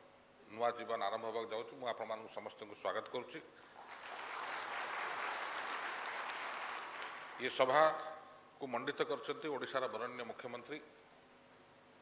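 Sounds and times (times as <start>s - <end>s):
audience applauding: 3.8s - 7.5s.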